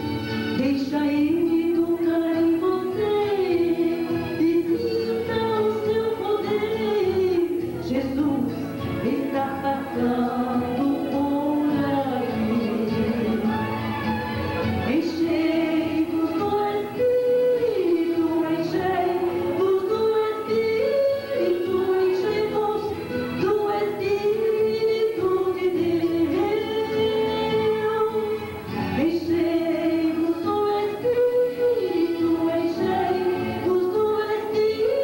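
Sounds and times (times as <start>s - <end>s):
woman singing gospel: 0.6s - 13.7s, 14.8s - 35.0s.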